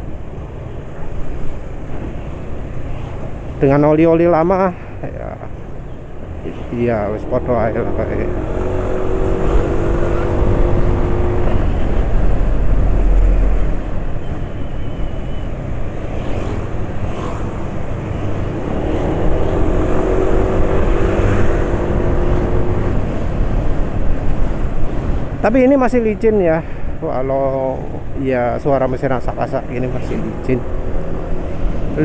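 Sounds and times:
wind rumbling on microphone: 0:08.2 - 0:14.2.

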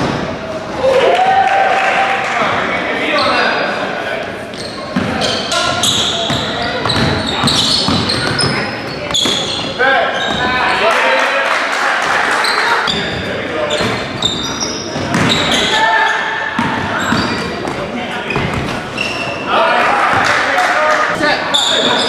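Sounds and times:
echoing din of voices: 0:00.0 - 0:22.0
sneakers squeaking: 0:03.0 - 0:10.8, 0:12.4 - 0:20.4, 0:21.1 - 0:22.0.

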